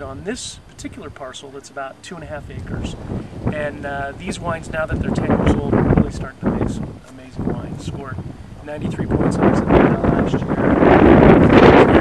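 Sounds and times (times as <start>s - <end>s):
wind buffeting microphone: 2.2s - 12.0s.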